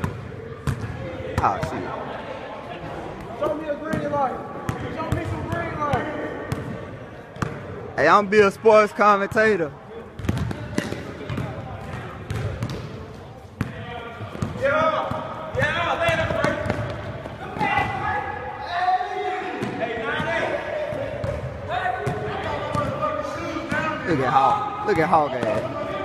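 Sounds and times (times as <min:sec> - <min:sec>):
basketball bouncing: 0:00.0 - 0:01.8, 0:04.7 - 0:06.8, 0:10.2 - 0:12.9, 0:13.6 - 0:18.0
people talking and calling out: 0:00.0 - 0:26.0.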